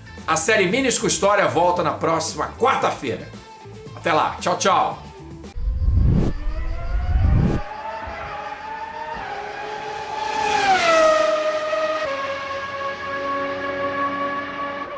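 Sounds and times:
low rumbling whooshes: 5.5 - 7.7.

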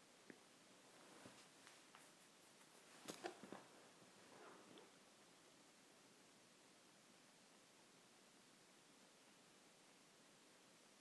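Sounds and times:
fabric rustling: 0.9 - 4.9.

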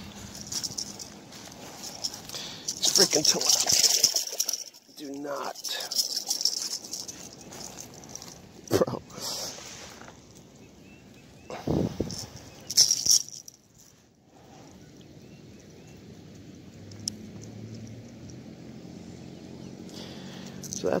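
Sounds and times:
splashing and fish handling: 0.0 - 8.6.

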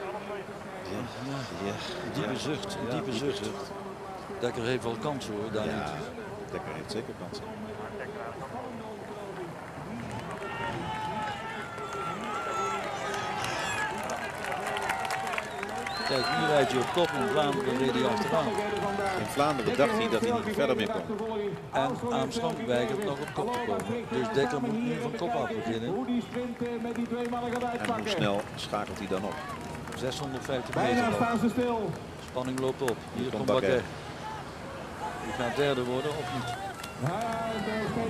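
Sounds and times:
spectators cheering and shouting: 9.8 - 20.8, 34.0 - 38.0.

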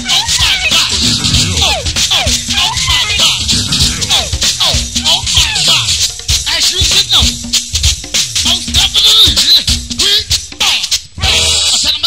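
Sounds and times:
band playing dense groove: 0.0 - 12.0.

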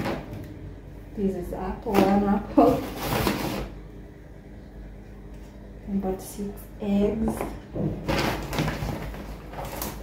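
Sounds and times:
shopping bag rustling: 2.0 - 3.8.

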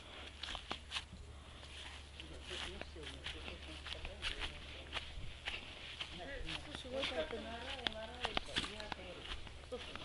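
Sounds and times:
footsteps on grass: 0.0 - 10.0.

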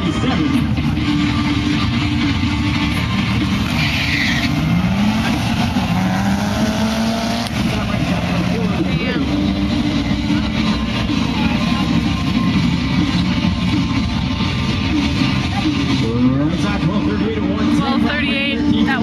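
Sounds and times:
car engines accelerating hard: 0.0 - 19.0.

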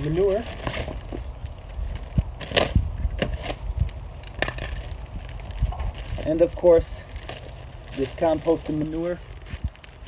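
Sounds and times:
plastic bag tearing and crinkling: 0.0 - 10.0
steady low rumble: 0.0 - 10.0.

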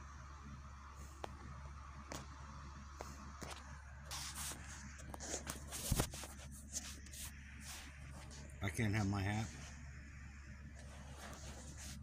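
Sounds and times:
low electrical hum: 0.0 - 12.0
rustling and scraping: 3.1 - 8.6, 10.8 - 12.0.

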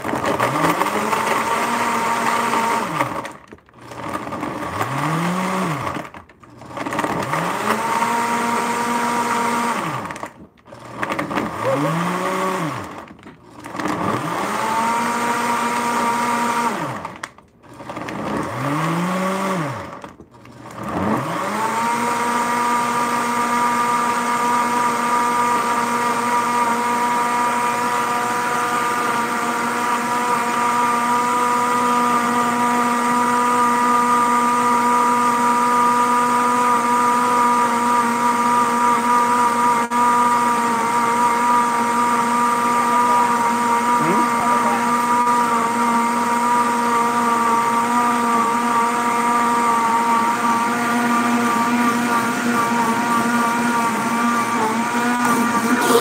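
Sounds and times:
blender motor running: 0.0 - 56.0
blender click: 47.6 - 56.0.

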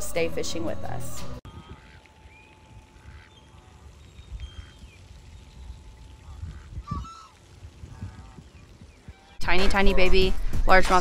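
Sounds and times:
waterfowl calling: 1.5 - 10.4.

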